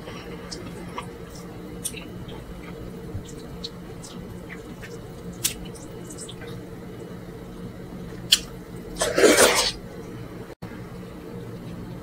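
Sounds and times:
wet mouth and hand noise: 0:00.3 - 0:06.5.

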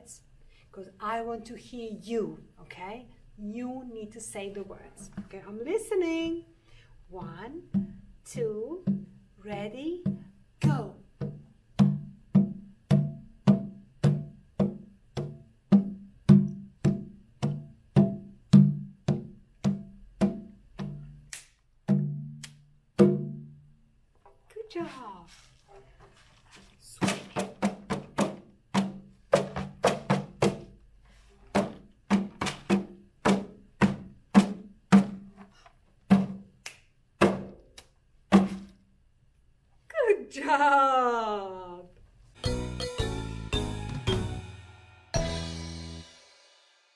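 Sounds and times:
barrel drum struck with palms: 0:10.0 - 0:21.3, 0:23.0 - 0:23.5, 0:27.0 - 0:30.8, 0:31.5 - 0:35.3, 0:36.1 - 0:36.5, 0:37.2 - 0:37.6.

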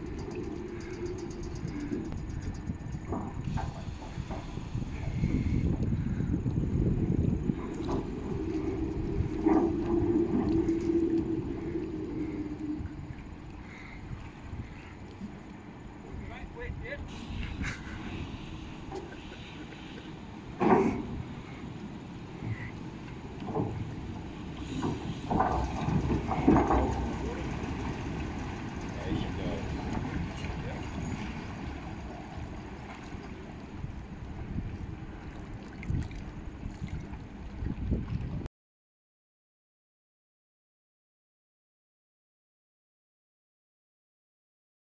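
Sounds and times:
rough low rumble: 0:00.0 - 0:38.5
wind buffeting microphone: 0:00.0 - 0:38.5
faint voices: 0:28.8 - 0:31.4.

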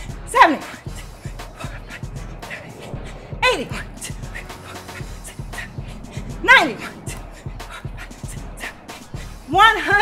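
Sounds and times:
workout music with steady beat: 0:00.0 - 0:10.0.

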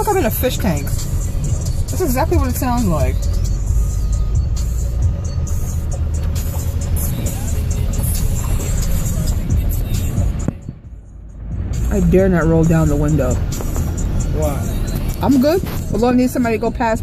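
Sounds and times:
car noise from inside: 0:00.0 - 0:17.0.

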